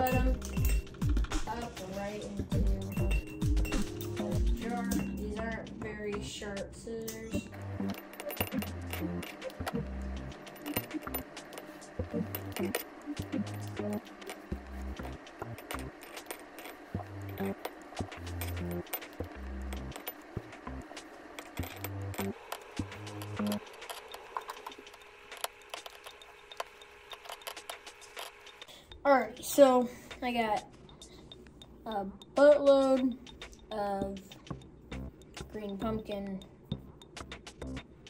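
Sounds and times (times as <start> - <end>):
background music with bass line: 0.0 - 6.3, 7.4 - 11.3, 12.0 - 15.9, 17.0 - 20.9, 34.1 - 36.1, 36.7 - 37.9.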